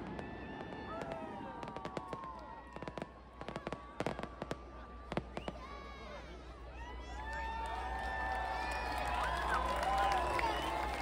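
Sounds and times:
large crowd cheering: 0.0 - 4.4, 5.5 - 11.0.

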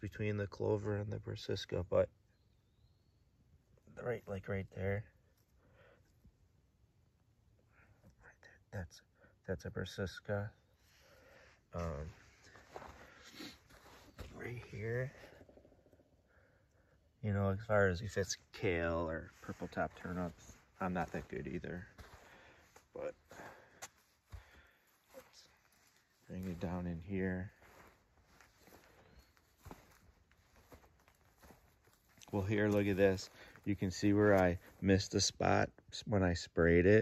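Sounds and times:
faint footsteps on sandy soil: 11.0 - 15.4, 18.1 - 35.2
faint rustling and handling: 11.6 - 15.6, 18.5 - 34.9.

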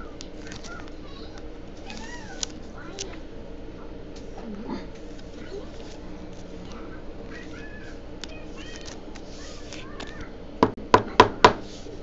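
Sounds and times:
steady low hum: 0.0 - 12.0
trading cards clicking: 8.2 - 10.3.

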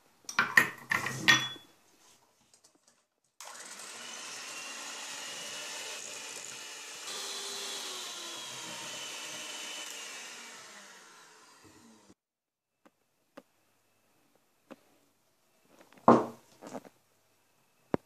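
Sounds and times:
electric hand mixer whisking: 3.4 - 12.2.

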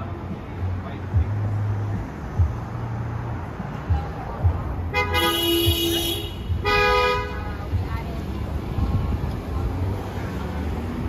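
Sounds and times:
street traffic: 0.0 - 11.0
car horn honking: 4.9 - 7.7.

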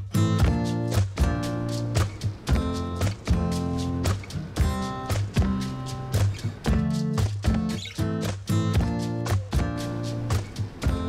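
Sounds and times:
guitar background music: 0.0 - 11.0.

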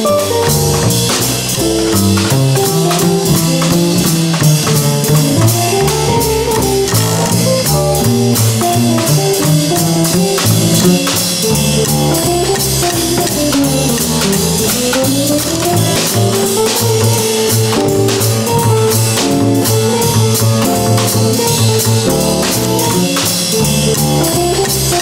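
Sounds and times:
drum kit keeping time: 0.0 - 25.0
small jazz band playing: 0.0 - 25.0
stepping bass line: 0.0 - 25.0.

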